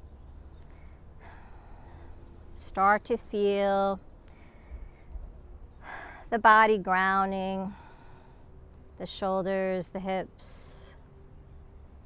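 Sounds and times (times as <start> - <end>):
woman drawing breath: 7.7 - 8.5.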